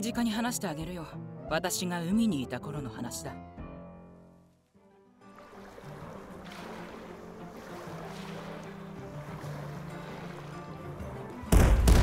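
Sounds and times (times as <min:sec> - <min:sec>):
background music with sustained notes: 0:00.0 - 0:12.0
sea waves: 0:05.2 - 0:12.0
wind: 0:05.4 - 0:12.0.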